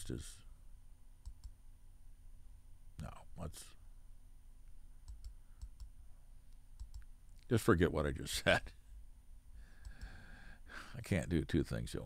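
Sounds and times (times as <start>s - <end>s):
faint computer clicks: 1.2s - 1.6s, 5.0s - 7.5s, 9.8s - 10.2s.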